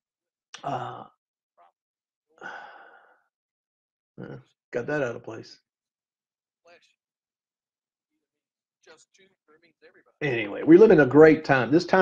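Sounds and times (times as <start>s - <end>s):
man sighing: 0.6s - 1.1s, 2.4s - 3.2s.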